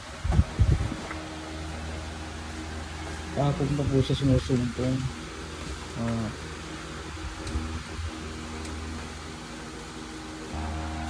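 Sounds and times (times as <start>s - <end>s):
low background hum: 0.1s - 11.0s.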